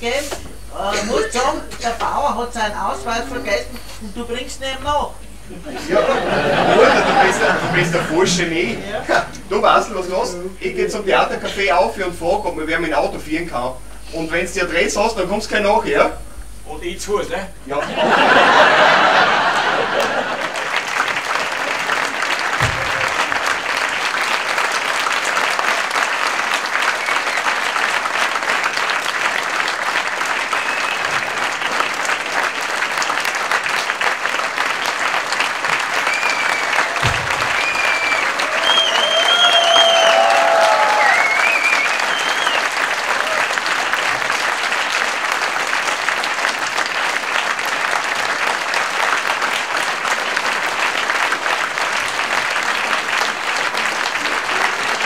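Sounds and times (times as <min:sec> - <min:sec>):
audience applauding: 0:05.7 - 0:11.8, 0:17.8 - 0:55.0.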